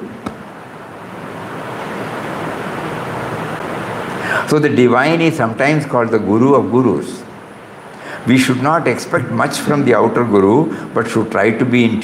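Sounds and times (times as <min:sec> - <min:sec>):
steady rushing noise: 0:00.0 - 0:11.7.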